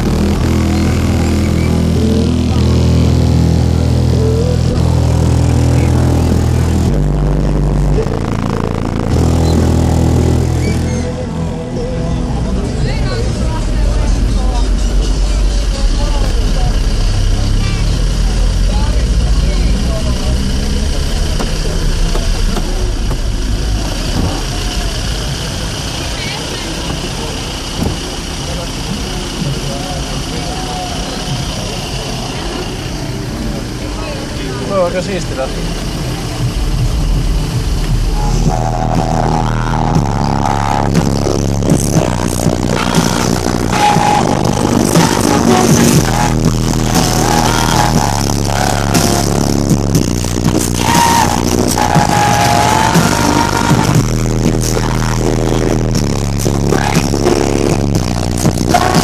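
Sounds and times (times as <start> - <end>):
car subwoofer deep bass: 0.0 - 59.0.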